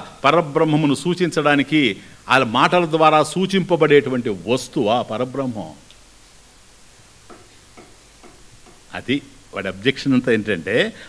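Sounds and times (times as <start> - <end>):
low steady background noise: 0.0 - 11.0
faint regular ticking: 7.1 - 9.2.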